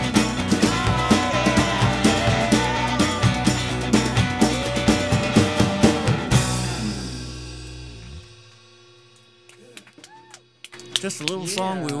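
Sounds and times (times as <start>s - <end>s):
live rock band playing: 0.0s - 8.2s.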